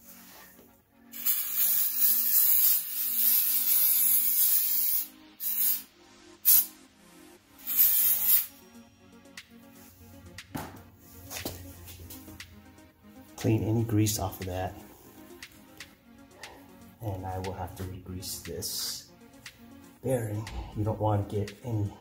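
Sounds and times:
aerosol spray hissing: 1.1 - 6.7, 7.6 - 8.6.

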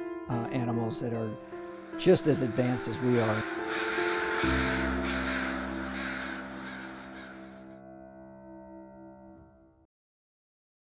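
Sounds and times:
held chord of music: 0.2 - 9.7
crows cawing: 1.7 - 7.9.

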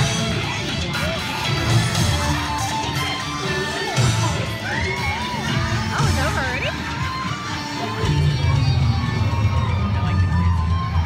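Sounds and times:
heavy bass line: 0.0 - 11.0
parade music over sound system: 0.0 - 11.0.

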